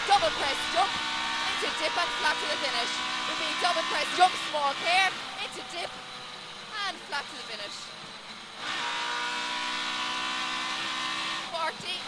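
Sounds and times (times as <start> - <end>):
rally car engine at high revs: 0.0 - 12.0.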